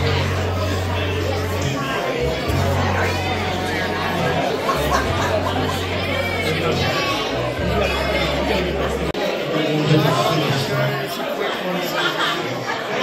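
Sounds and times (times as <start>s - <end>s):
many people talking: 0.0s - 13.0s.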